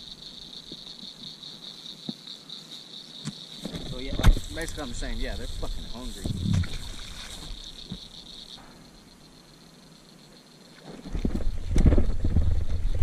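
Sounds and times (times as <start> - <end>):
high insect buzz: 0.0 - 13.0
rumbling and knocks of reeling: 11.0 - 13.0.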